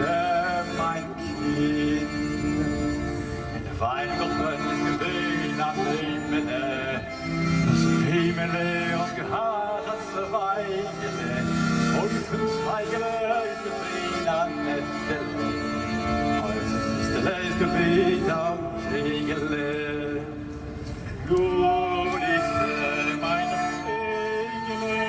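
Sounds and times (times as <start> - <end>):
saxophone melody: 0.0 - 19.3, 21.8 - 25.0
accordion chords: 0.0 - 25.0.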